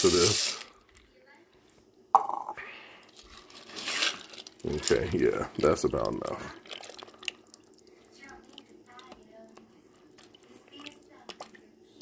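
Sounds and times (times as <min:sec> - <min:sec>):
dry pasta poured into pot: 0:00.0 - 0:00.8, 0:03.1 - 0:07.6.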